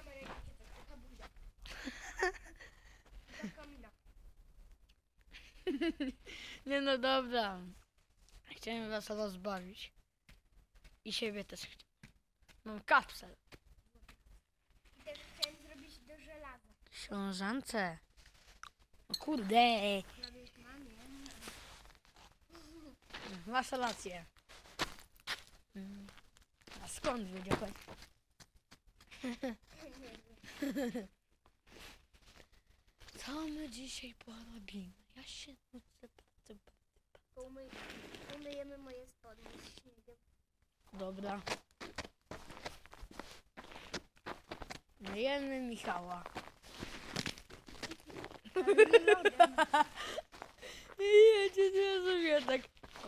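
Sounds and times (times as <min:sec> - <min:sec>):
person speaking: 0:15.0 - 0:18.0, 0:19.1 - 0:21.6, 0:26.8 - 0:27.8, 0:45.0 - 0:46.4, 0:47.8 - 0:53.0.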